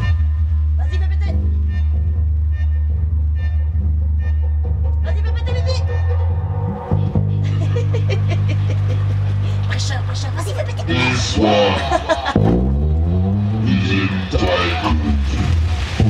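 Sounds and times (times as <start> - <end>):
deep dub bassline: 0.0 - 16.0
person's voice: 5.0 - 6.0, 9.5 - 12.4, 13.6 - 15.6.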